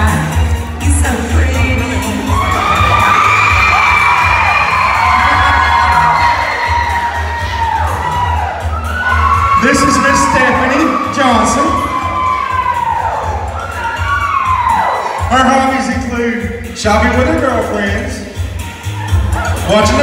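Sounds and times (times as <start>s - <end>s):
music over loudspeakers: 0.0s - 20.0s
audience cheering and screaming: 2.0s - 16.0s.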